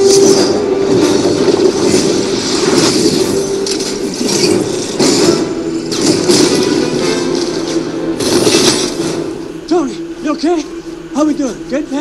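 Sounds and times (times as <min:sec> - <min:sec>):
crashes and impacts: 0:00.0 - 0:09.6
action film music: 0:00.0 - 0:12.0.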